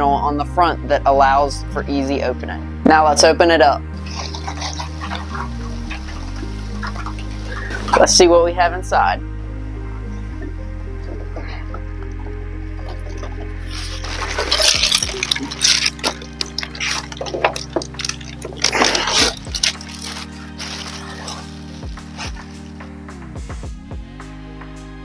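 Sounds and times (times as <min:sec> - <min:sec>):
background music with low chords: 0:00.0 - 0:25.0
packing peanuts crackling: 0:13.7 - 0:22.7
plastic bag rustling: 0:13.7 - 0:22.8.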